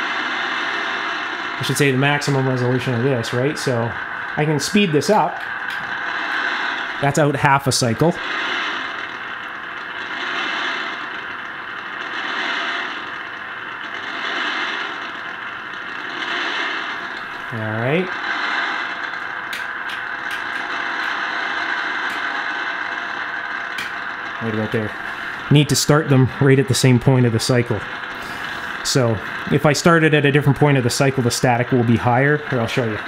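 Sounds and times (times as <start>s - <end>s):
radio static from speaker: 0.0s - 33.0s.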